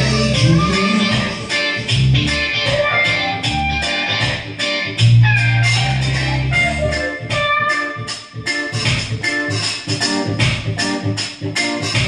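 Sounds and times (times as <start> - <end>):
held bass notes: 0.0 - 12.0
plucked guitar-like keyboard melody: 0.0 - 12.0
steady drum beat: 0.0 - 12.0.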